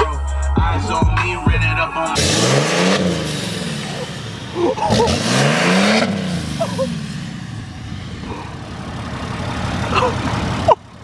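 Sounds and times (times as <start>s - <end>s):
hip hop music with bass beat: 0.0s - 5.6s
diesel pickup revving: 0.8s - 11.0s.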